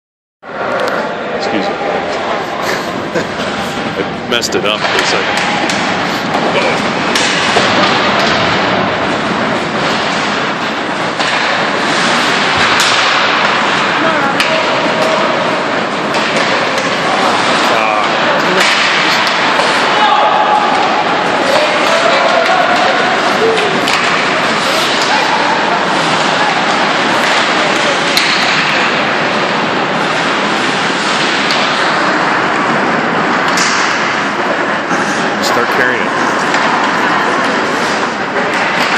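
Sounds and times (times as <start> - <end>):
skating and play noise: 0.5 - 38.9
spectators' voices: 0.5 - 38.9
puck and sticks knocking boards: 4.8 - 35.0, 36.2 - 38.9.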